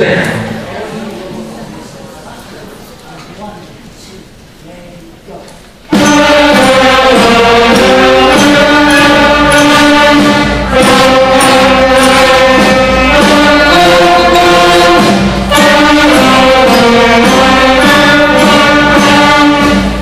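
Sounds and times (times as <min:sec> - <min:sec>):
concert band playing: 0:05.8 - 0:20.0.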